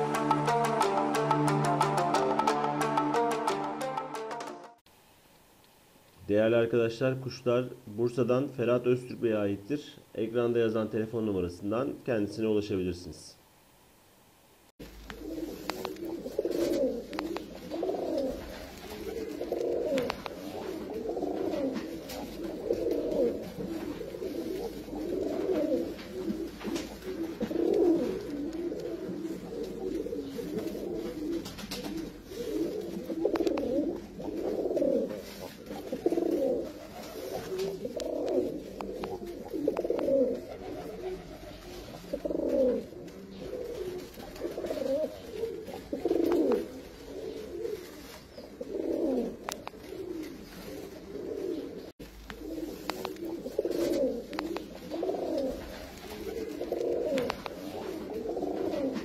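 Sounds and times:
pigeons cooing: 14.9 - 59.0.

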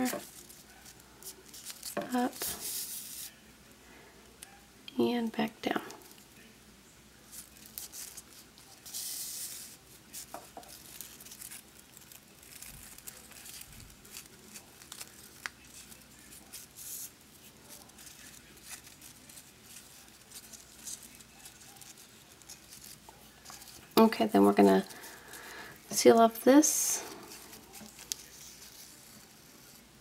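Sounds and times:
ribbon rustling and crinkling: 0.0 - 3.5, 7.2 - 30.0.

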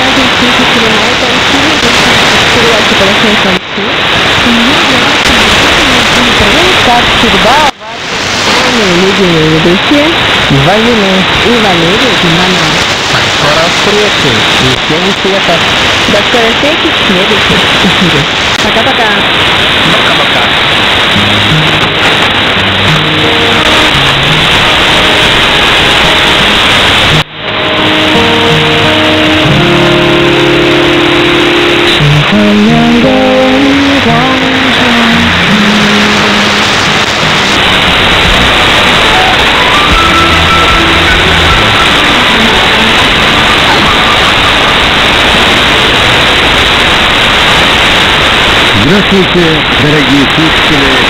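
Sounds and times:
music on am radio: 0.0 - 51.0
radio static hiss: 0.0 - 51.0.

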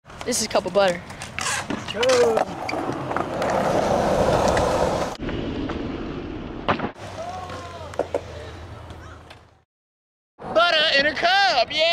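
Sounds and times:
skateboard wheels rolling on concrete: 0.1 - 9.6
voices calling out: 7.0 - 9.6.

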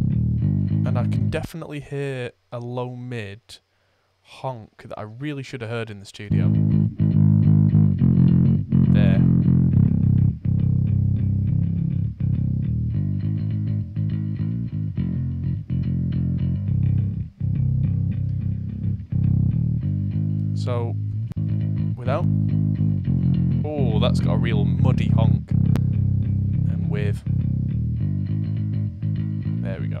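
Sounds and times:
electric bass notes: 0.0 - 1.5, 6.3 - 30.0.

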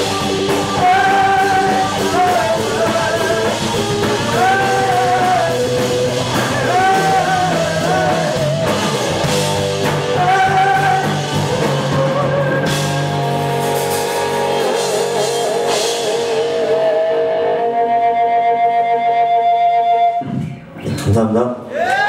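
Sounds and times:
live rock band playing: 0.0 - 21.1
person singing: 0.1 - 8.8, 10.1 - 13.1.

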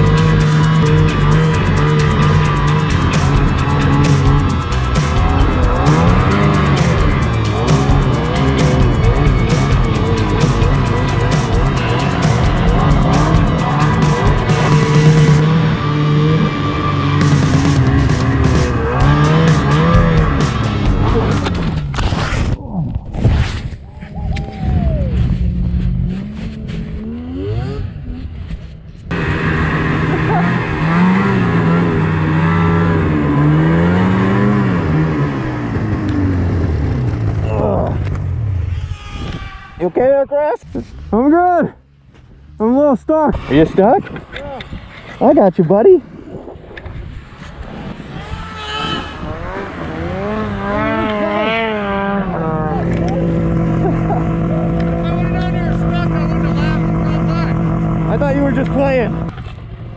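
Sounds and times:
background music: 0.0 - 21.9
snowmobile engines revving: 0.0 - 59.9.

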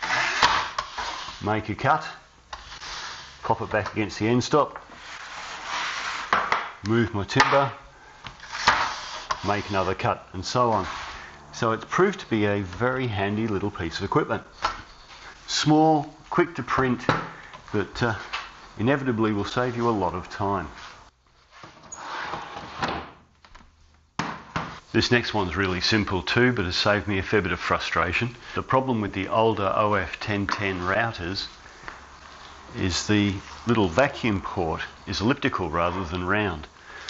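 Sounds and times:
quiet shuffling: 8.2 - 22.0, 29.7 - 34.6.

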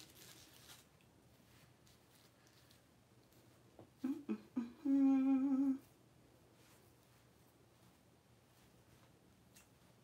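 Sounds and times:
woman humming: 4.0 - 5.9.

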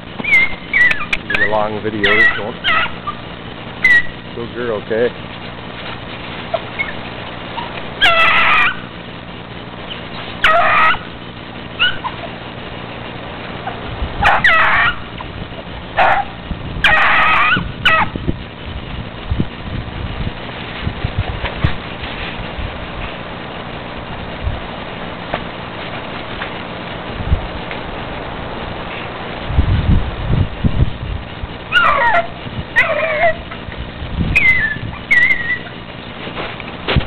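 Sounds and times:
hound baying: 0.2 - 4.3, 6.4 - 9.0, 9.8 - 11.2, 11.8 - 12.4, 13.6 - 15.2, 15.9 - 18.2, 31.7 - 33.7, 34.3 - 35.9.

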